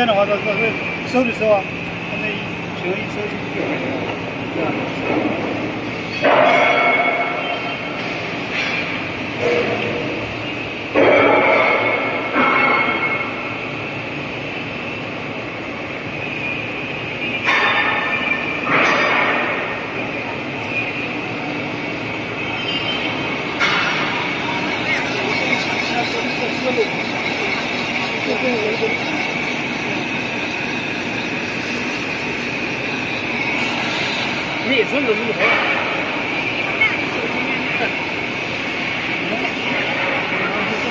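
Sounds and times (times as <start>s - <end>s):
printing press running: 0.0s - 40.9s.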